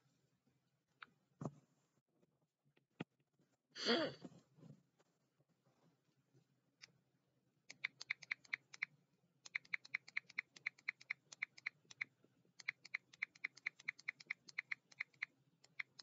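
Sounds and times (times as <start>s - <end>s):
computer keyboard typing: 7.7s - 8.9s, 9.5s - 16.0s.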